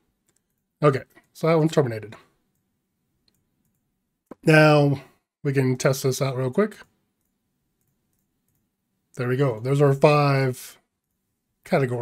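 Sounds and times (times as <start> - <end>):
computer mouse clicks: 0.2 - 1.4, 2.5 - 4.4, 6.8 - 8.7
person speaking: 0.7 - 2.4, 4.2 - 7.0, 9.1 - 10.9, 11.6 - 12.0.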